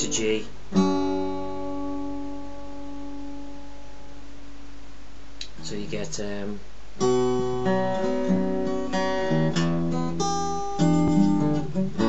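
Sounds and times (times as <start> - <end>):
acoustic guitar chord ringing: 0.0 - 4.6, 7.0 - 12.0.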